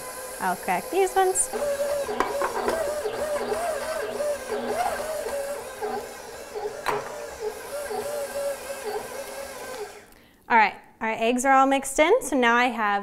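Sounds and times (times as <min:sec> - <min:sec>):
stand mixer beating dough: 0:00.0 - 0:10.1.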